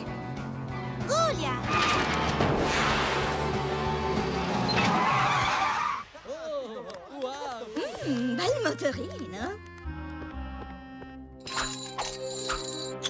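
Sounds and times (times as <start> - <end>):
background music: 0.0 - 6.1, 7.4 - 13.0.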